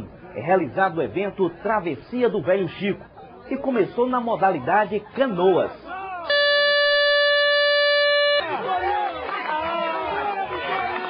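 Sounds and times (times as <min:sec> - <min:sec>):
air horn blast: 0:06.3 - 0:08.5.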